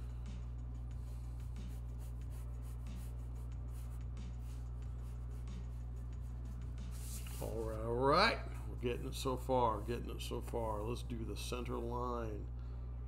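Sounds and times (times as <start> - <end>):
low electrical hum: 0.0 - 13.0
pencil scratching on paper: 1.4 - 7.6.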